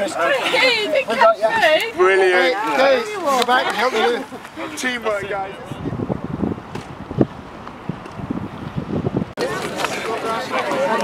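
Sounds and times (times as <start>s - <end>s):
wind buffeting microphone: 3.5s - 10.4s.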